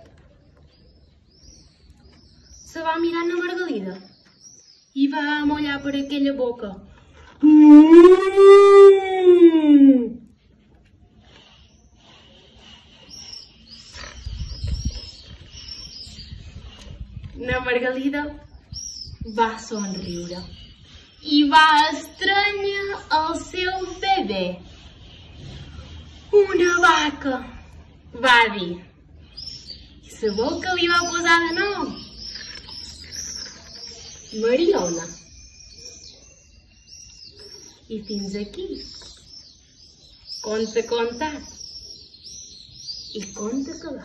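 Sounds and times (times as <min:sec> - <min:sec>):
small bird chirping: 0:00.0 - 0:08.3, 0:11.2 - 0:44.0.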